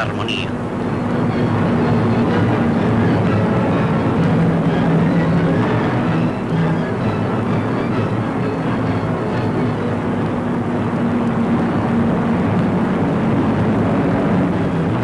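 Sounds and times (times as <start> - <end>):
orchestral music: 0.0 - 11.6
propeller aircraft engines droning: 0.0 - 15.0.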